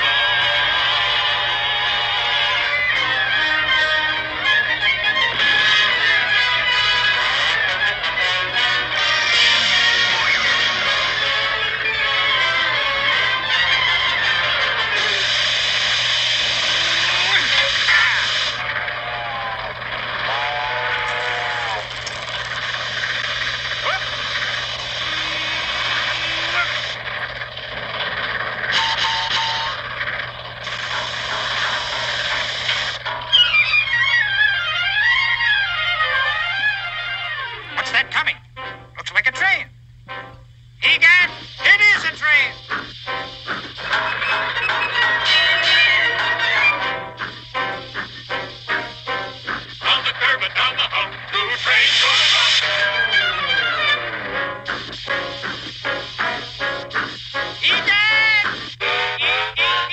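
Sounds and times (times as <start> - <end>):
cartoon music: 0.0 - 15.4, 33.3 - 38.9, 40.1 - 59.9
dense steady noise: 0.0 - 33.4, 37.8 - 59.9
choppy stop-start bursts: 0.0 - 59.9.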